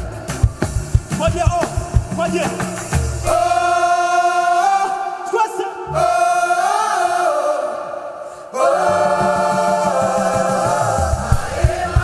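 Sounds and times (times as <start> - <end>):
live band: 0.0 - 3.4
drum hits: 0.0 - 3.6, 9.2 - 12.0
gospel choir singing: 0.0 - 12.0.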